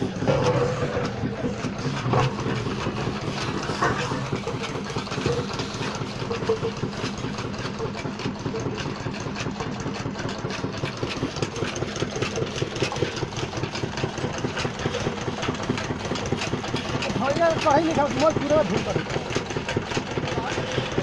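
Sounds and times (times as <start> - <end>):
small generator engine running: 0.0 - 21.0.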